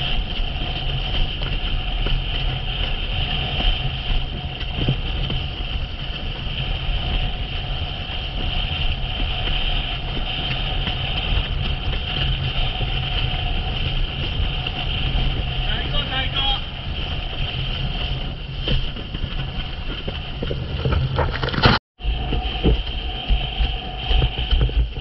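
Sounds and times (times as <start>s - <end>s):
boat engine running: 0.0s - 25.0s
wind noise: 0.0s - 25.0s.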